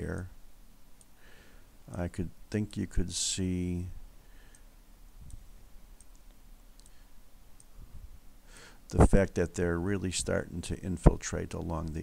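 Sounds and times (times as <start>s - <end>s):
computer mouse clicks: 4.5s - 7.0s, 11.6s - 12.0s.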